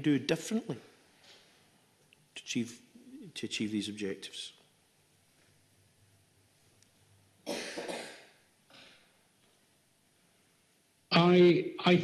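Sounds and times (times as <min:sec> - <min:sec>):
person coughing: 0:07.5 - 0:09.0.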